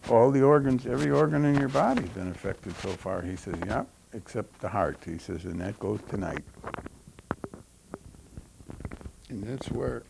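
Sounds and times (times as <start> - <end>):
microphone handling clicks: 5.8 - 10.0.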